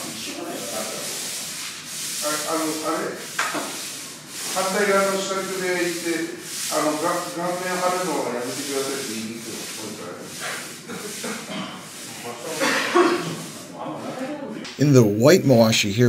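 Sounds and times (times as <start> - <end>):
straw broom sweeping sand: 0.0 - 13.7
man calling out: 14.8 - 16.0.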